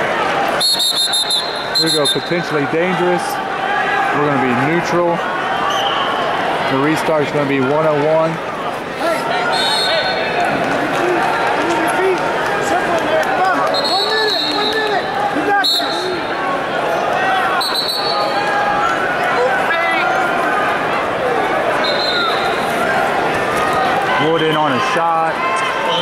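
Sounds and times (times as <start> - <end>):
voices calling and shouting: 0.0 - 26.0
referee whistle blasts: 0.6 - 2.5, 5.7 - 6.3, 9.5 - 10.2, 13.7 - 15.0, 15.6 - 16.2, 17.6 - 18.3, 21.8 - 22.6.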